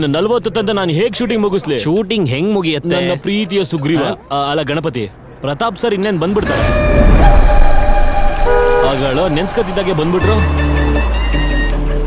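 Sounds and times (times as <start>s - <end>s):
car horn honking: 6.5s - 12.0s
low engine rumble: 6.6s - 12.0s.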